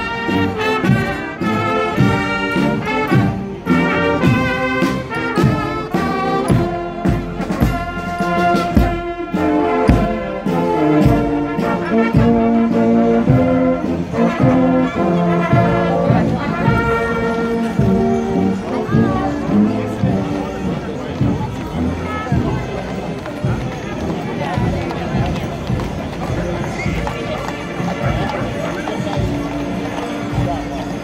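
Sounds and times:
brass band playing a march: 0:00.0 - 0:31.0.

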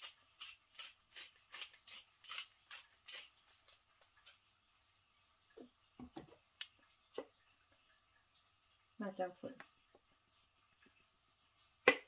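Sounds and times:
pepper mill grinding: 0:00.0 - 0:03.8.

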